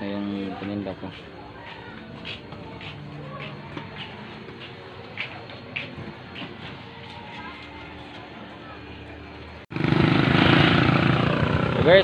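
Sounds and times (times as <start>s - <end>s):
small motorcycle engine running: 9.7s - 12.0s.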